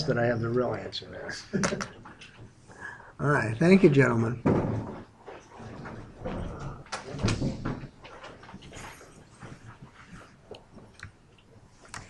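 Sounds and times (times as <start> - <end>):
small knocks and shuffles: 4.4 - 12.0.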